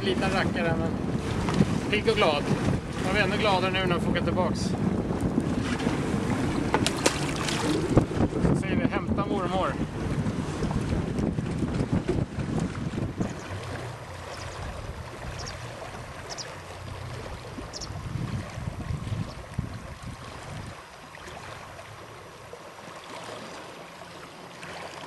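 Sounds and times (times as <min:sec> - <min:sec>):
wind buffeting microphone: 0:00.0 - 0:22.0
water slopping against boat: 0:00.0 - 0:25.0
fish splashing in water: 0:05.6 - 0:08.0.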